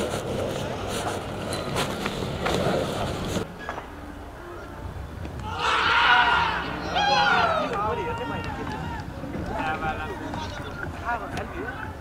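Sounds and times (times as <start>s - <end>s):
people calling out and talking: 4.0s - 12.0s.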